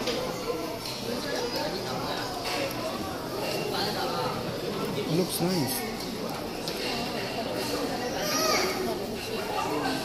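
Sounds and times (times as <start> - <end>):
children's voices: 0.0 - 3.4, 5.4 - 10.0
murmur of people talking: 0.0 - 10.0.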